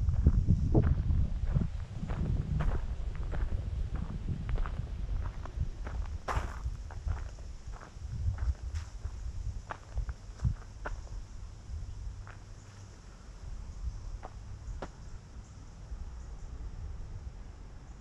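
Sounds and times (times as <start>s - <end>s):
low rumble: 0.0s - 12.4s
footsteps crunching on gravel: 0.2s - 11.2s.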